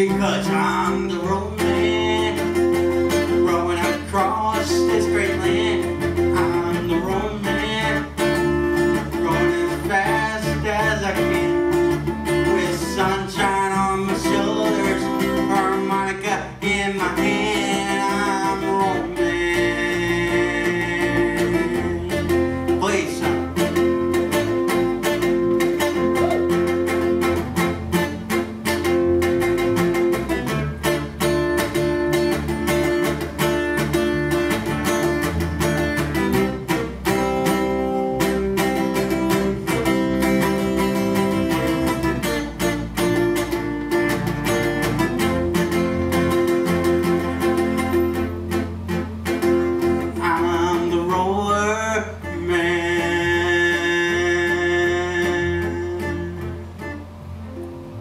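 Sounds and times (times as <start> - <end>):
person singing: 0.0 - 23.8, 25.8 - 27.0, 50.1 - 57.7
acoustic guitar strumming: 0.0 - 58.0
electric bass line: 0.0 - 58.0.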